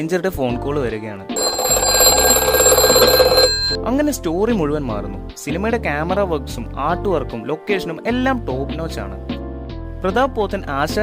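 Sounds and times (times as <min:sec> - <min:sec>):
telephone bell ringing: 0:01.4 - 0:03.8.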